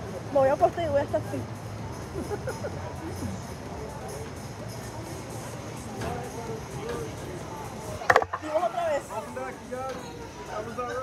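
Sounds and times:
ride capsule clunking into dock: 8.0s - 8.5s.

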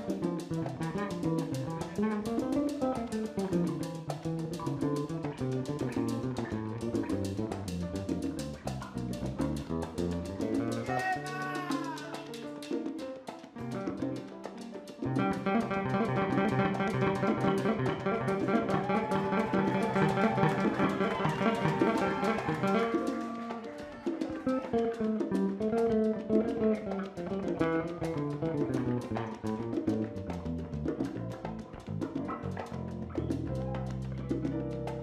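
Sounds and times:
electric bass line: 0.0s - 10.9s, 15.2s - 22.9s, 25.4s - 35.0s
live salsa band playing: 0.0s - 35.0s.

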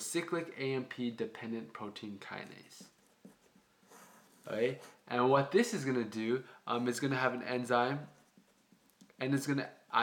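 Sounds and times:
marker scratching on paper: 2.4s - 5.0s, 8.0s - 8.9s.

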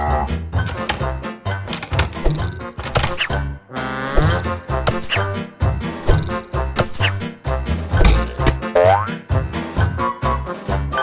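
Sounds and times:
upbeat background music: 1.7s - 3.4s, 4.1s - 5.4s, 6.0s - 9.3s.

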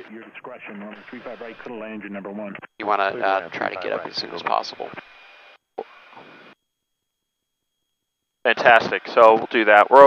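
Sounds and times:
cockpit background hiss: 0.0s - 6.6s.

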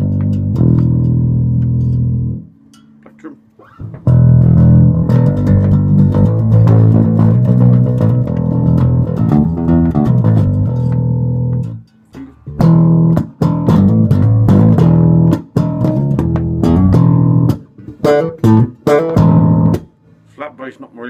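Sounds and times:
bass guitar plucked with fingers: 0.0s - 20.0s.

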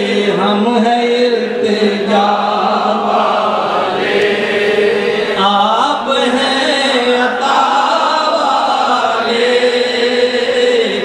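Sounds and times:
man singing unaccompanied: 0.0s - 3.2s, 4.2s - 11.0s.

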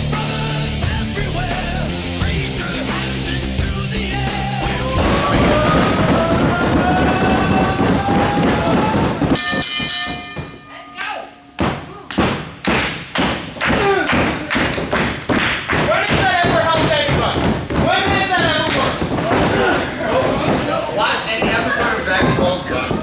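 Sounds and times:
rhythmic hand clapping: 2.3s - 10.0s, 11.0s - 23.0s
voices shouting: 4.7s - 9.4s.

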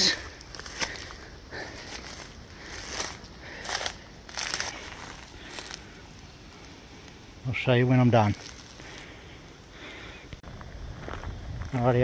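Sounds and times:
footsteps on dry grass and leaves: 0.0s - 9.3s, 10.4s - 12.0s.

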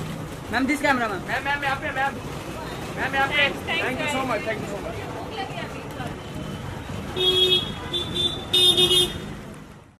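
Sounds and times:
street noise: 0.0s - 10.0s
people chattering: 0.5s - 9.9s
car horn honking: 7.2s - 9.3s.

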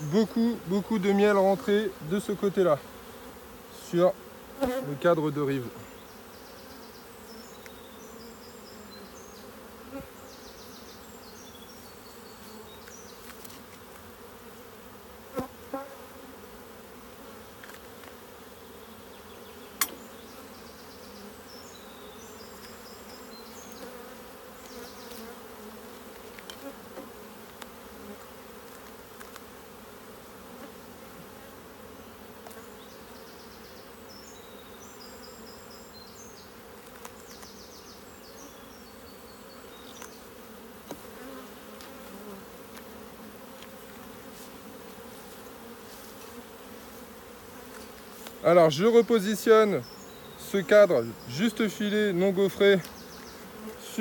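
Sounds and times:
bees buzzing: 0.0s - 54.0s.

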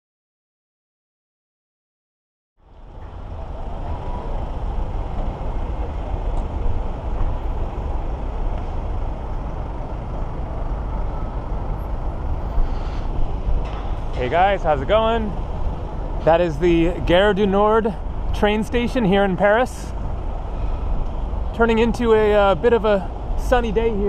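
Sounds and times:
city traffic rumble: 2.6s - 24.0s.

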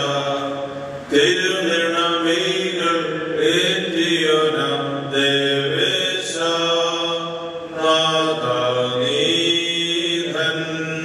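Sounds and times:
steady low drone: 0.0s - 11.0s.

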